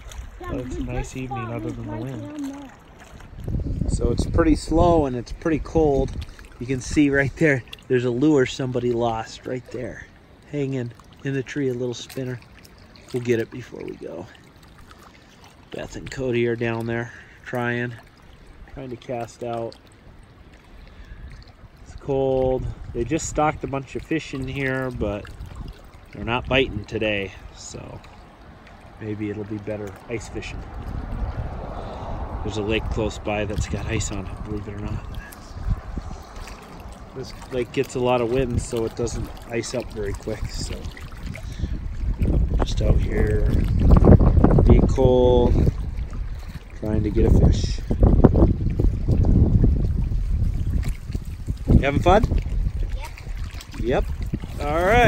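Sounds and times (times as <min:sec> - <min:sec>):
wind on microphone: 0:00.0 - 0:07.7, 0:21.0 - 0:28.0, 0:30.1 - 0:55.0
water lapping against rocks: 0:00.0 - 0:55.0.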